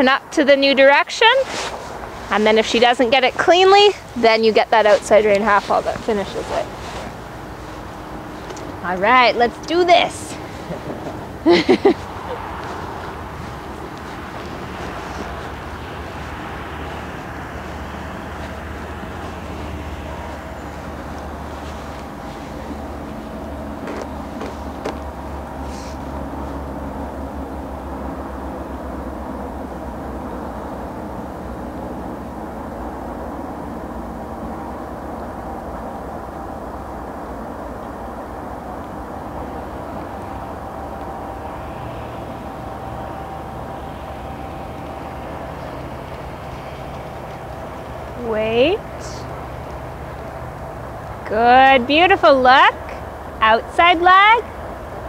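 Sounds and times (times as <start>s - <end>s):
low background rumble: 0.0s - 55.0s
faint humming tones: 2.0s - 55.0s.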